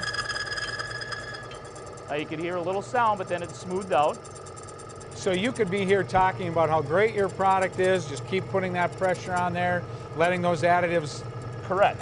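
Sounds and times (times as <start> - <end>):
high-pitched machine whine: 0.0 - 12.0
mechanical hum: 0.0 - 12.0.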